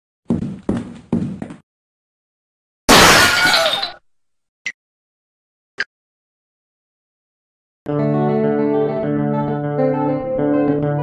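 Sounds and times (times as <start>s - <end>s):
glass shattering crash: 2.9s - 4.0s.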